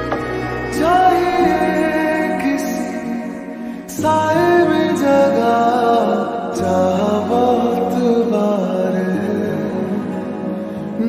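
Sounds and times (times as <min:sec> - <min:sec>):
person singing slowed love song: 0:00.0 - 0:11.0
soft steady accompaniment: 0:00.0 - 0:11.0.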